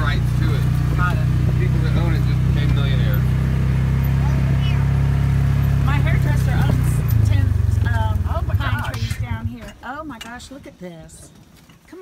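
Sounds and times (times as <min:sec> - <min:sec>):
vehicle engine running: 0:00.0 - 0:09.9.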